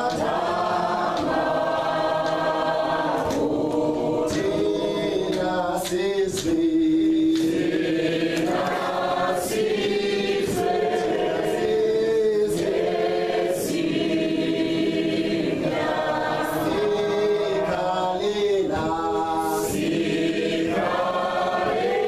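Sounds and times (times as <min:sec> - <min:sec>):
crowd singing: 0:00.0 - 0:22.0.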